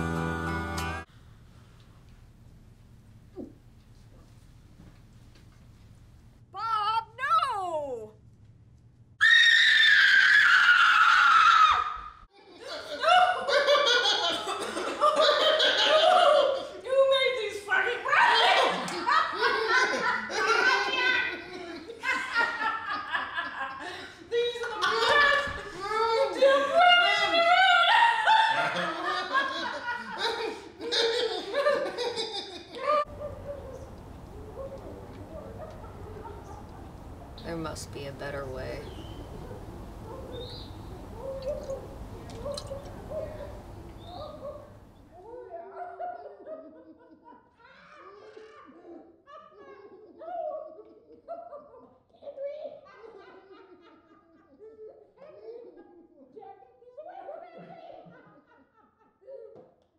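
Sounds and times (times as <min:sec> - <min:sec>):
people laughing: 0:12.4 - 0:17.1, 0:18.1 - 0:37.0, 0:41.1 - 0:59.6
faint low hum: 0:19.1 - 0:47.4.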